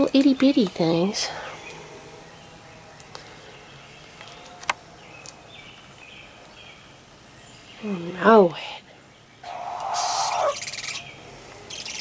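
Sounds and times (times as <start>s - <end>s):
background hiss: 0.0s - 12.0s
baby owls calling: 9.4s - 12.0s.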